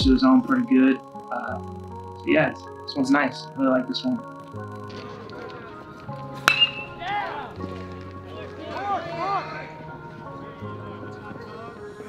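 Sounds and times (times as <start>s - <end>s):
metal bat hitting ball: 6.4s - 7.0s.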